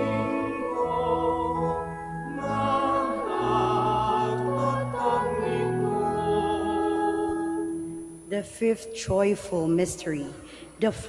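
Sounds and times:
sustained accompaniment: 0.0s - 11.0s
voices singing a slow hymn: 0.0s - 11.0s.

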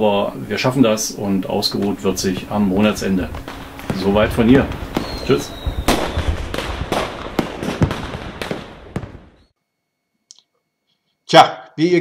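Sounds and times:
fireworks crackling: 0.5s - 9.5s
firework bangs: 1.2s - 9.5s.

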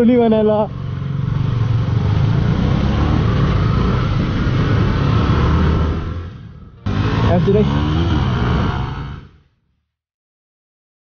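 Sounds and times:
motorcycle engine running: 0.0s - 9.4s.

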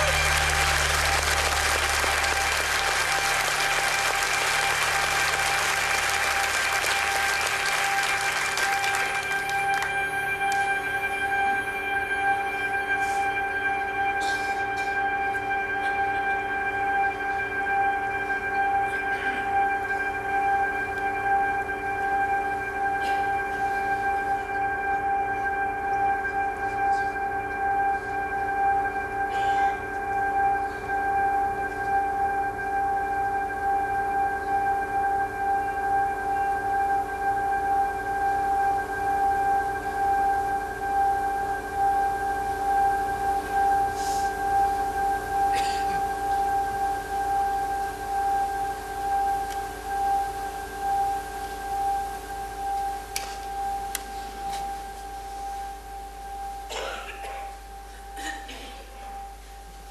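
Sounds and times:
musical drone: 0.0s - 59.9s.

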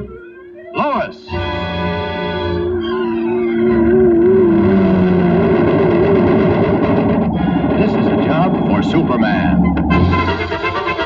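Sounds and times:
dramatic orchestral music: 5.8s - 11.0s.

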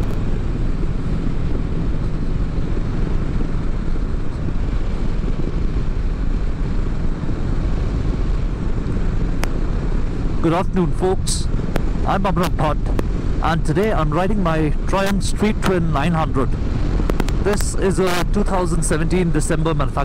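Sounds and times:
motorcycle engine cruising: 0.0s - 20.0s
wind rush on microphone: 0.0s - 20.0s.

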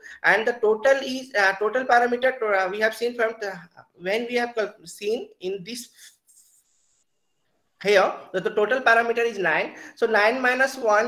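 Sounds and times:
man speaking: 0.0s - 6.5s, 7.8s - 11.0s.

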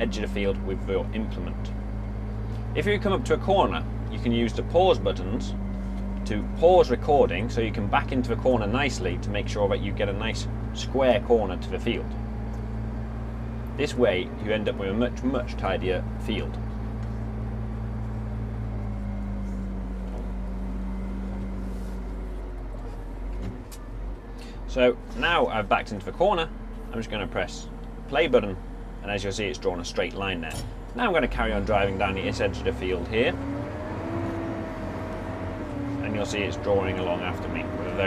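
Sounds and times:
tractor diesel engine running: 0.0s - 38.0s.

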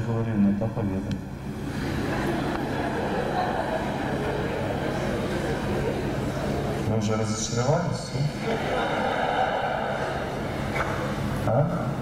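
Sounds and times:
steady low hum: 0.0s - 12.0s
indistinct echoing voices: 1.8s - 12.0s.

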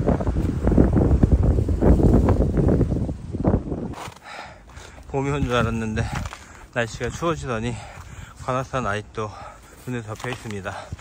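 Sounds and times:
wind buffeting microphone: 0.0s - 4.1s, 4.7s - 11.0s
footsteps on snowy rocky trail: 3.9s - 11.0s.

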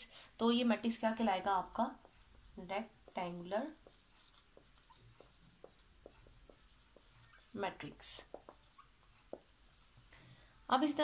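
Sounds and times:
marker squeaking on whiteboard: 2.0s - 10.1s.

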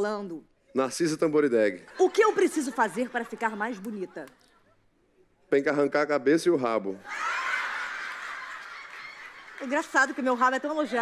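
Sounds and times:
studio audience laughing: 1.9s - 4.3s, 7.0s - 11.0s.

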